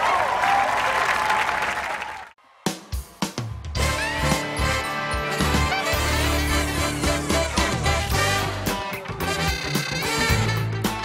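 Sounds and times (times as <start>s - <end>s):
audience applauding and cheering: 0.0s - 2.4s.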